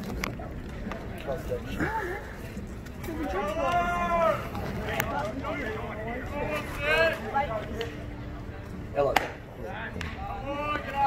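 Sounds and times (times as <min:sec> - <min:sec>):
sharp bat crack: 0:09.1 - 0:09.4.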